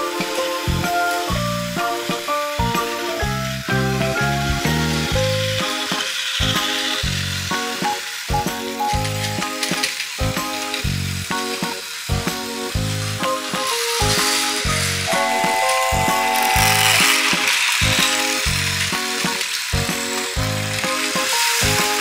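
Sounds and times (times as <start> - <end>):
toy train motor rattling whir: 5.1 - 12.1, 13.0 - 22.0.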